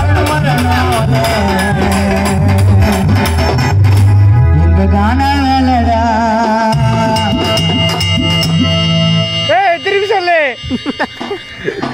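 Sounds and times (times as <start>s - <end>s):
man's amplified voice: 0.0s - 2.6s, 9.3s - 11.0s
electronic keyboard chord: 0.0s - 11.9s
man laughing: 10.6s - 11.9s.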